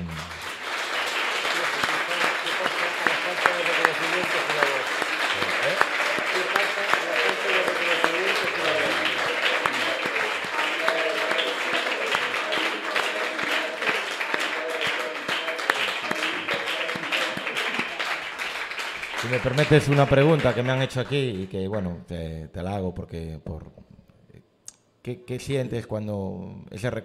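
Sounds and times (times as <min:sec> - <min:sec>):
audience applauding: 0:00.0 - 0:21.5
voices talking: 0:01.5 - 0:18.2.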